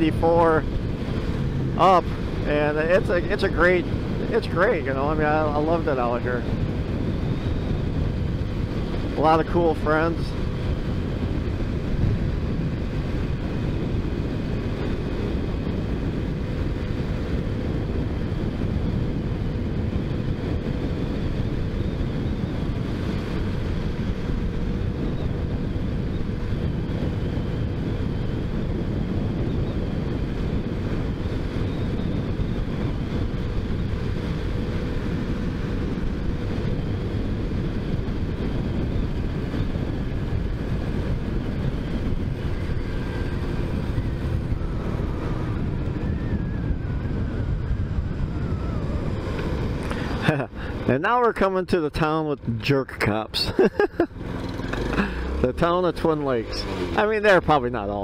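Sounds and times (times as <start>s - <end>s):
motorcycle engine cruising: 0.0s - 58.0s
wind on microphone: 0.0s - 58.0s.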